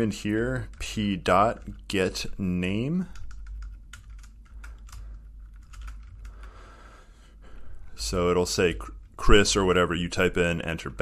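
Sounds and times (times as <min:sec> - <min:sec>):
keyboard typing clicks: 0:03.2 - 0:06.5.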